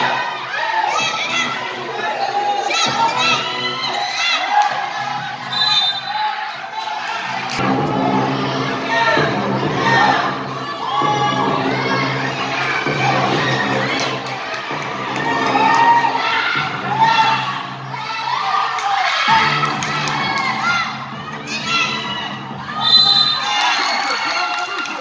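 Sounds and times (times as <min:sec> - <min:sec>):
crowd shouting and cheering: 0:00.0 - 0:25.0.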